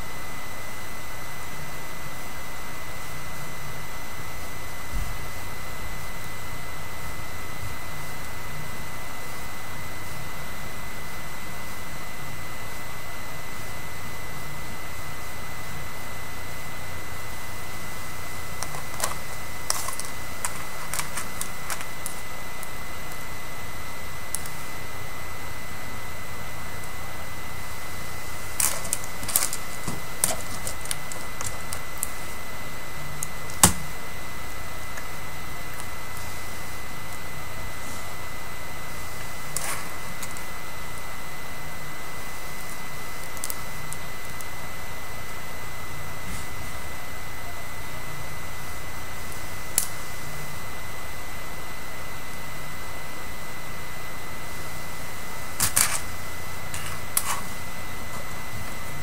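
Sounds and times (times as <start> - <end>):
thin high whine: 0.0 - 59.0
steady hiss: 26.5 - 50.6.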